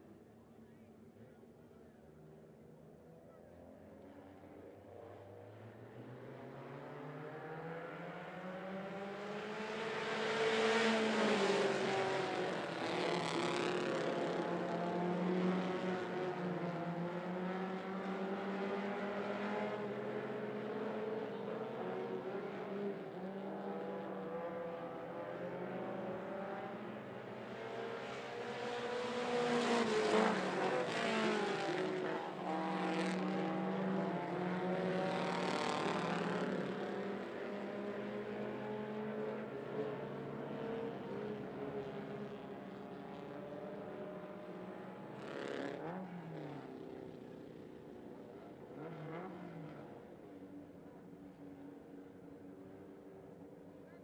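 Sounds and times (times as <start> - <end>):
race car engines passing: 5.4 - 53.9.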